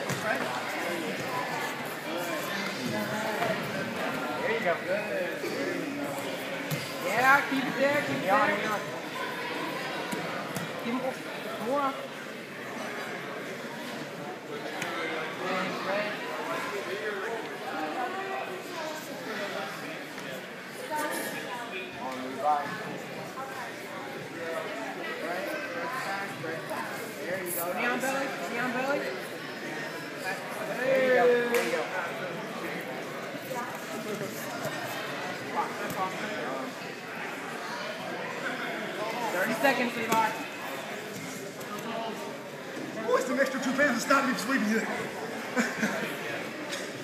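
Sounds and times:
indistinct background chatter: 0:00.0 - 0:47.0
people talking in a hall: 0:00.0 - 0:47.0.

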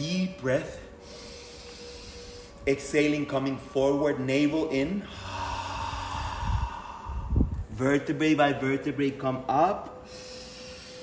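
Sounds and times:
person exhaling breathily: 0:05.0 - 0:07.7.

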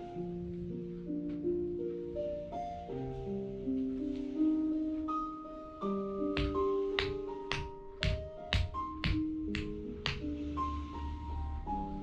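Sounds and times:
soft spa music with bell notes: 0:00.0 - 0:12.0
hands slapping on body: 0:06.4 - 0:10.3.

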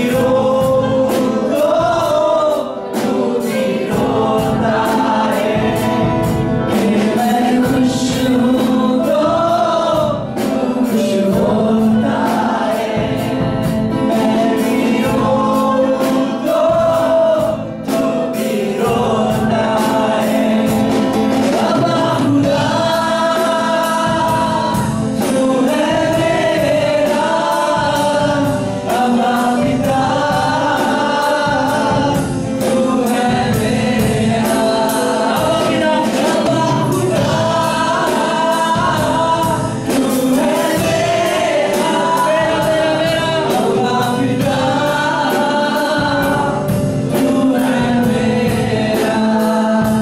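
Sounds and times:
congregation singing along: 0:00.0 - 0:50.0
drum kit beat: 0:00.0 - 0:50.0
man singing into a microphone: 0:00.0 - 0:50.0.

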